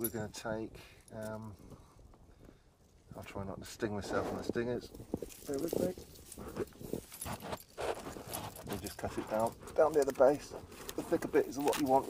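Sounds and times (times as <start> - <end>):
rustling garden plants: 3.0 - 12.0.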